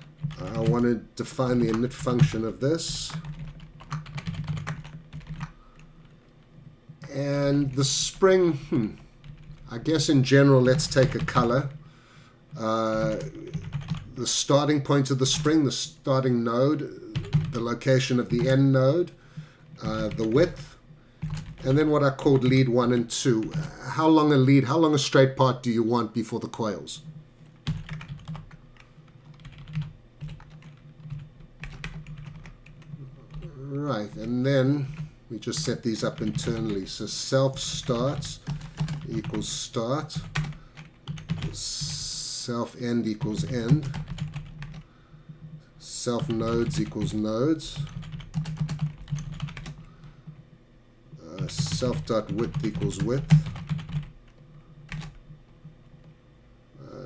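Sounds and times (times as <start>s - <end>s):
typing on computer keyboard: 0.0s - 5.9s, 12.9s - 14.1s, 17.1s - 18.6s, 19.7s - 23.8s, 27.6s - 36.9s, 37.5s - 42.0s, 43.2s - 44.9s, 46.2s - 49.9s, 51.3s - 54.1s, 54.9s - 55.2s.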